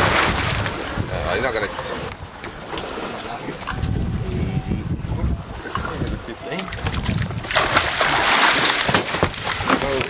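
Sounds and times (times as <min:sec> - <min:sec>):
fish thrashing and splashing: 0:06.7 - 0:10.0.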